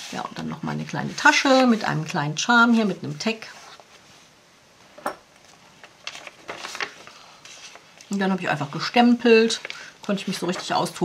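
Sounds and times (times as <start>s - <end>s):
paper pages rustling: 0.8s - 4.2s, 5.4s - 11.0s.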